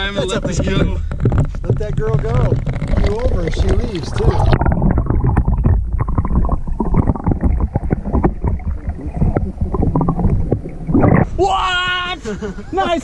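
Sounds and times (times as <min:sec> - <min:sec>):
water sloshing underwater: 0:00.0 - 0:12.6
knocks and thuds: 0:00.1 - 0:11.3.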